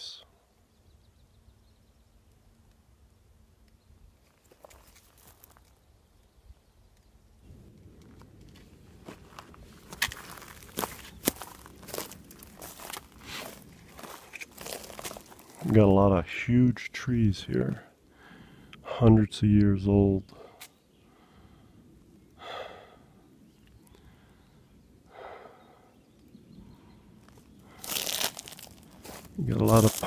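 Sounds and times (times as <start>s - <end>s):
twigs crackling: 3.7s - 7.2s, 7.8s - 15.9s, 27.1s - 30.0s
footsteps crunching on forest floor: 4.2s - 5.8s, 8.3s - 15.8s, 27.2s - 30.0s.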